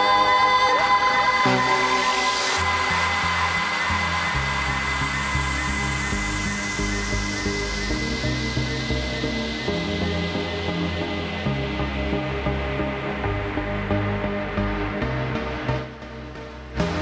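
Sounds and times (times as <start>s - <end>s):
bass notes: 1.4s - 17.0s.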